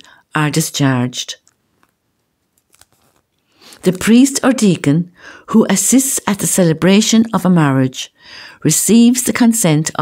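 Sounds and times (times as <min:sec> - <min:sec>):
person reading aloud: 0:00.3 - 0:01.5, 0:03.7 - 0:10.0.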